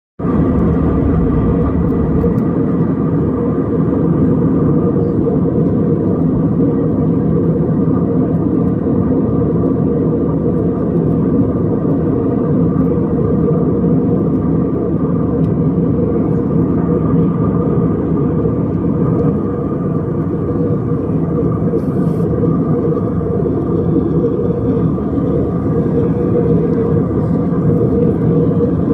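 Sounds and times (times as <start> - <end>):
aircraft cabin rumble: 0.2 - 28.9.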